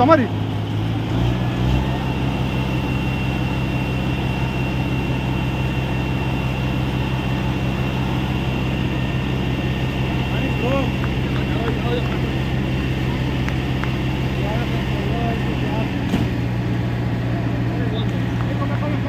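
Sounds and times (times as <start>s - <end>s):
low engine drone: 0.0s - 19.0s
thin high whine: 1.8s - 16.1s.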